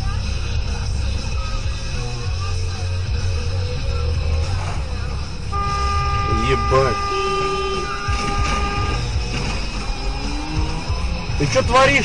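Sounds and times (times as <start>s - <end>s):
road noise rumble: 0.0s - 12.0s
vehicle horn blast: 5.5s - 9.2s.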